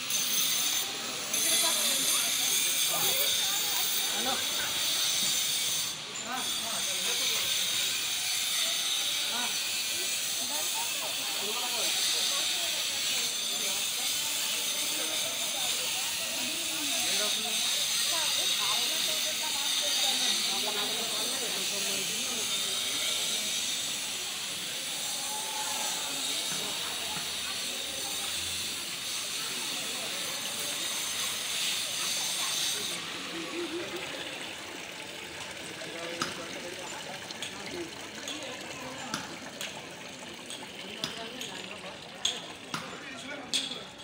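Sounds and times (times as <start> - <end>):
water gushing into stone channel: 0.1 - 43.8.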